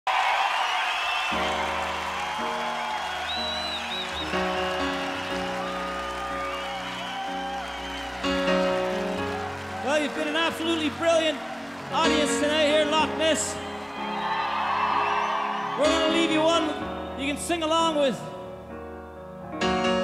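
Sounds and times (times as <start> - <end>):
crowd cheering and whistling: 0.0 - 17.6
sustained keyboard chords: 1.4 - 14.2.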